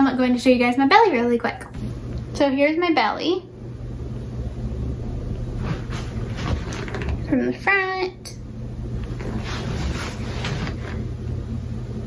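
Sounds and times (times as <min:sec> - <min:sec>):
low steady rumble: 0:00.0 - 0:12.0
fabric rustling: 0:05.6 - 0:07.2, 0:09.1 - 0:11.0.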